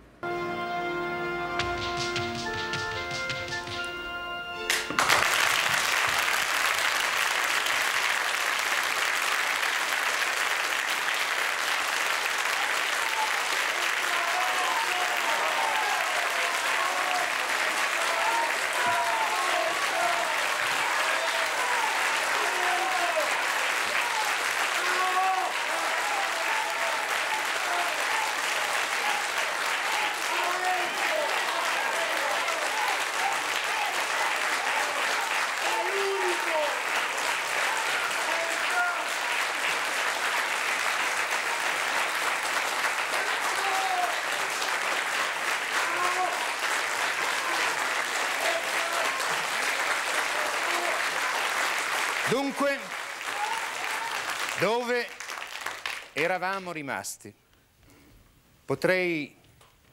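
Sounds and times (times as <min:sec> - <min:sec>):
audience applauding: 0:01.6 - 0:04.0, 0:04.6 - 0:56.7.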